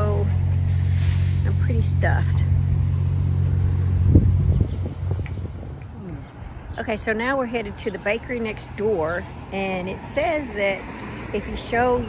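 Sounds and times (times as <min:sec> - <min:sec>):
pickup truck engine rumble: 0:00.0 - 0:06.7
wind noise on microphone: 0:00.0 - 0:07.1
faint traffic: 0:00.0 - 0:12.0.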